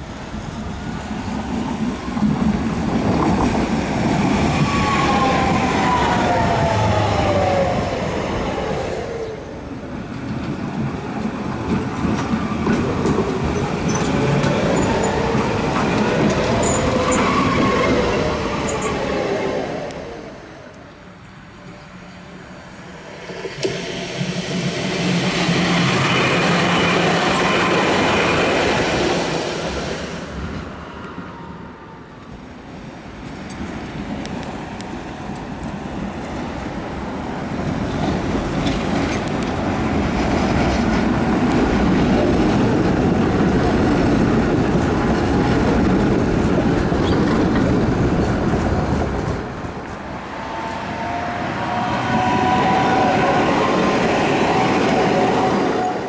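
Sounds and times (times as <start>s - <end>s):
rail and wheel noise: 0.0s - 56.0s
high wheel squeal: 16.6s - 19.0s
tram motor whine: 50.1s - 56.0s.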